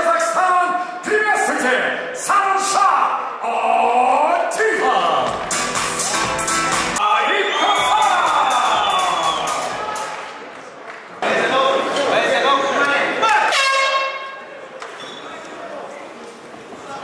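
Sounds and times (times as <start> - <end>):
announcer's amplified voice: 12.6 - 14.3.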